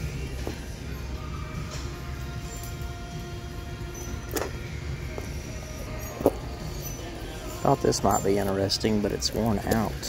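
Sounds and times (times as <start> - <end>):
faint background music: 0.0 - 10.0
low store hum: 0.0 - 10.0.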